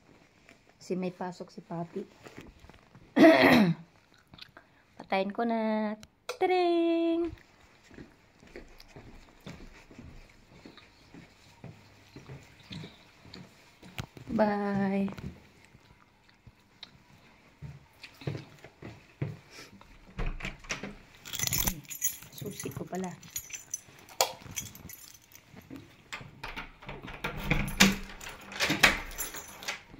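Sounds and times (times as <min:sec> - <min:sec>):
clothing rustling: 0:01.6 - 0:03.2, 0:20.9 - 0:26.4
soft footsteps: 0:07.2 - 0:20.2, 0:21.0 - 0:26.4
keys jangling: 0:21.2 - 0:29.9.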